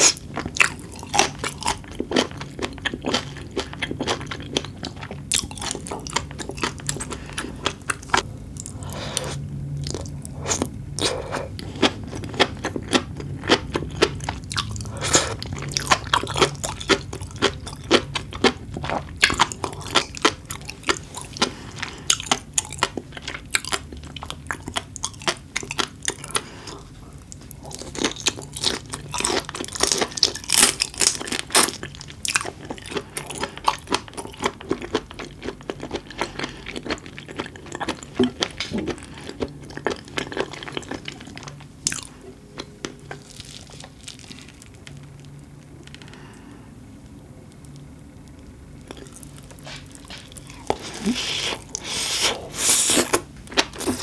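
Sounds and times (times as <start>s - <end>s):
crunchy chewing: 0.0s - 46.5s, 47.5s - 54.0s
wet mouth sounds: 49.6s - 54.0s.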